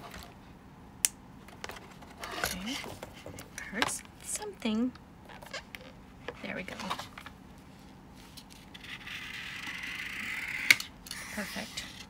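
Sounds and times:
knife blade scraping plastic: 0:08.6 - 0:12.0.

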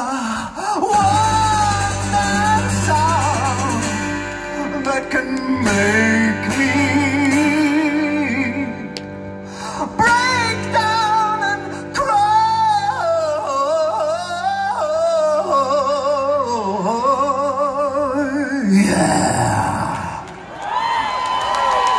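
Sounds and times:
live rock band: 0:00.0 - 0:13.2.

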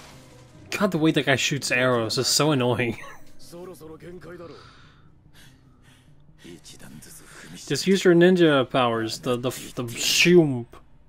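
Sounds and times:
faint dialogue: 0:00.6 - 0:10.9.

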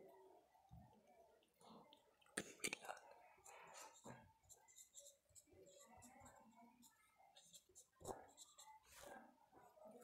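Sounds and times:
marker writing on whiteboard: 0:03.4 - 0:10.0.

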